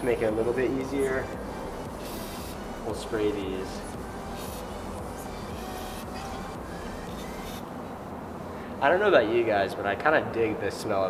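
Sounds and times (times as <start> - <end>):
steady low background hum: 0.0 - 11.0.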